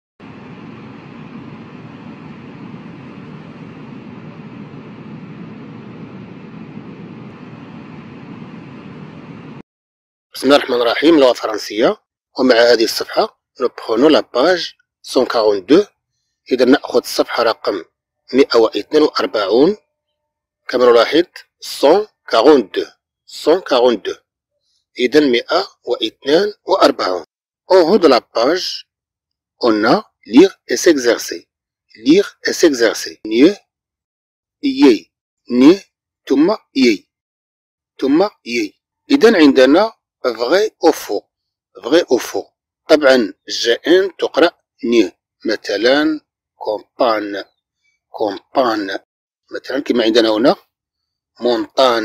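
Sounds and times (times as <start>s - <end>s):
steady low noise: 0.2s - 9.6s
man talking: 10.4s - 15.9s, 16.5s - 19.8s, 20.7s - 24.2s, 25.0s - 28.8s, 29.6s - 31.4s, 32.0s - 33.6s, 34.6s - 37.0s, 38.0s - 41.2s, 41.8s - 47.5s, 48.2s - 50.6s, 51.4s - 52.0s.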